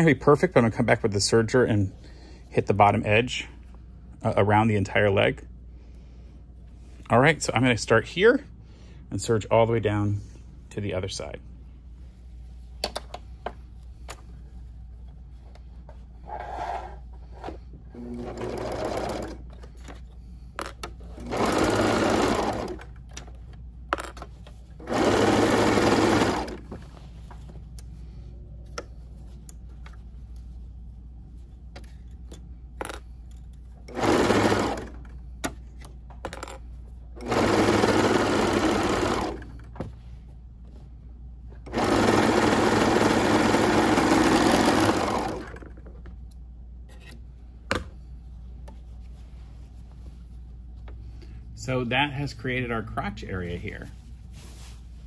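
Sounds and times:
serger stitching fabric: 0:17.9 - 0:19.5, 0:21.0 - 0:23.0, 0:24.8 - 0:27.0, 0:33.8 - 0:35.1, 0:37.2 - 0:39.6, 0:41.6 - 0:45.7.

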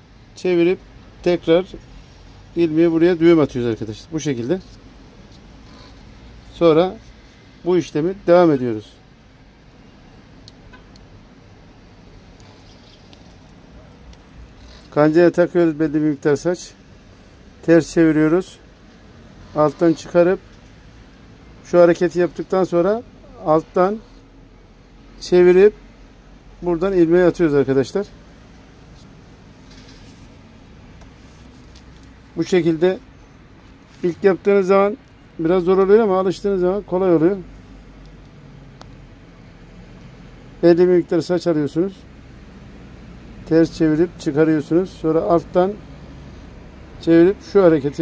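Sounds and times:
low steady background noise: 0:00.0 - 0:48.0
faint brief rustle: 0:28.8 - 0:32.2.

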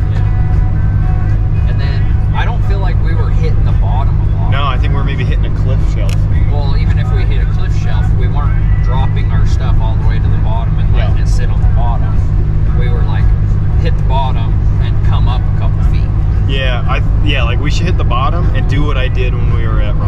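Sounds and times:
car road and engine drone: 0:00.0 - 0:20.0
men talking: 0:01.5 - 0:20.0.

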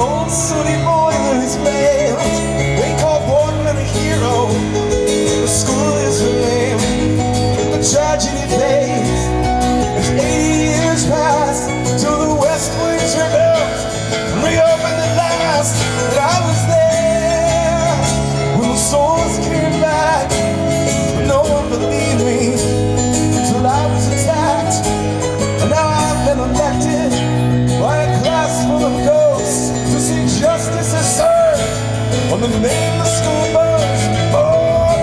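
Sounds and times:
live band playing: 0:00.0 - 0:35.0.

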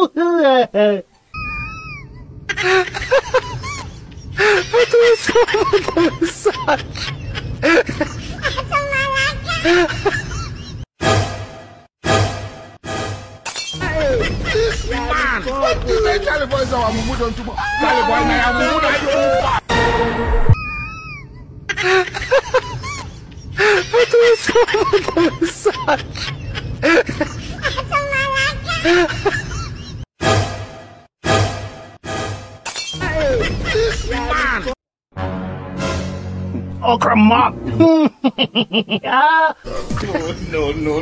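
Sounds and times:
glass shattering effect: 0:12.9 - 0:13.8, 0:32.1 - 0:33.0
glass shattering: 0:32.6 - 0:33.0.

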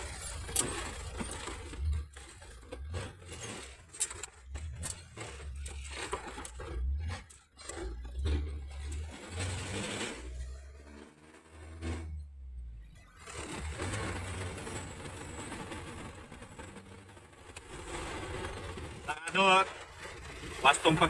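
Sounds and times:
truck engine: 0:00.0 - 0:21.0.

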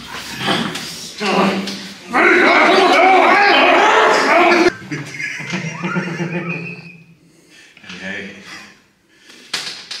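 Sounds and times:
man laughing: 0:04.3 - 0:07.0.

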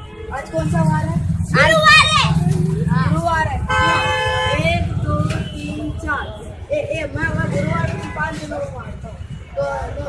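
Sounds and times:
boys shouting: 0:01.5 - 0:02.6.

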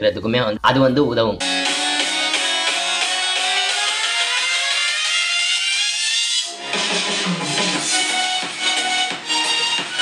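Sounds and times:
music from portable speaker: 0:01.4 - 0:10.0.

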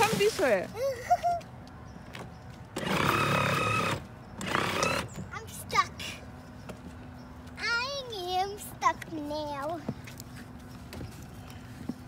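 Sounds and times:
toy truck motor whining: 0:02.8 - 0:05.2.

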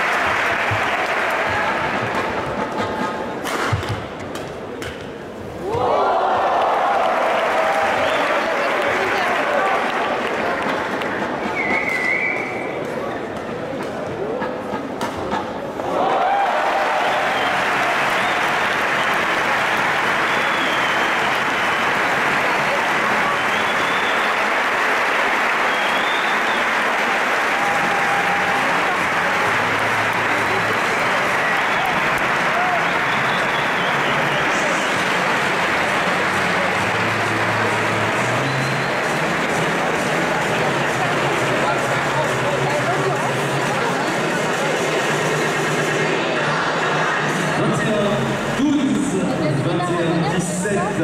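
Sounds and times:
crowd applauding: 0:00.0 - 0:02.8, 0:05.8 - 0:12.6, 0:15.8 - 0:49.1.

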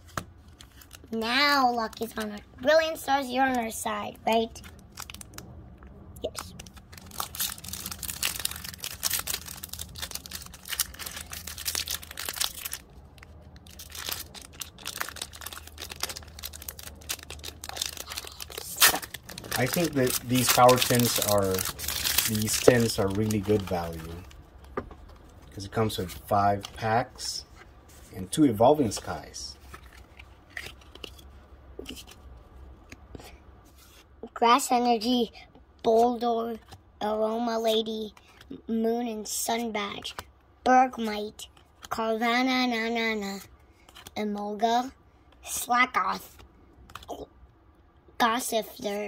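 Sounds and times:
foil wrapper crinkling and tearing: 0:04.5 - 0:05.4, 0:06.2 - 0:24.7.

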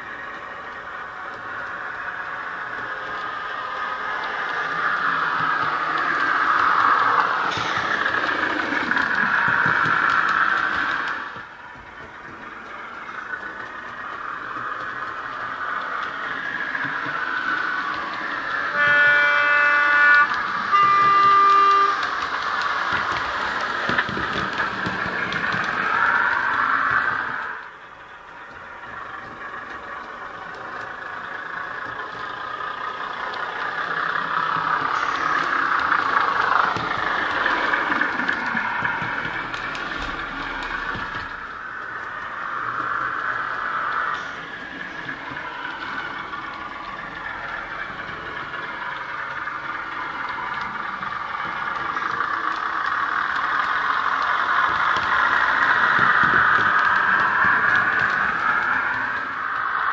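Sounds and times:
diesel train engine running: 0:00.0 - 0:59.9
two-tone train horn: 0:18.6 - 0:22.3.

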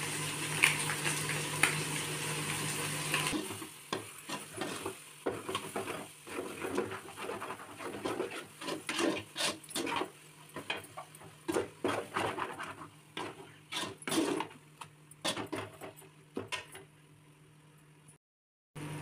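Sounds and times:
metal spatula scraping a pot: 0:03.3 - 0:14.6, 0:15.2 - 0:16.8.

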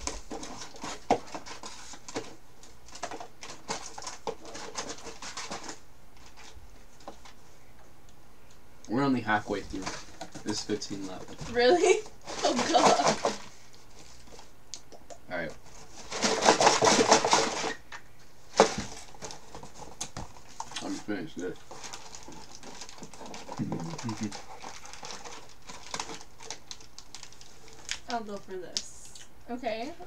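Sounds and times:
snack wrappers and cardboard rustling: 0:00.0 - 0:07.4, 0:09.2 - 0:29.4.

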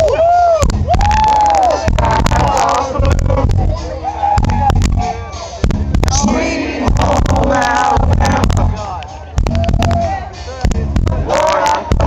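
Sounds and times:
loud rock band playing: 0:00.0 - 0:12.0
person singing: 0:01.4 - 0:04.1, 0:04.9 - 0:12.0.

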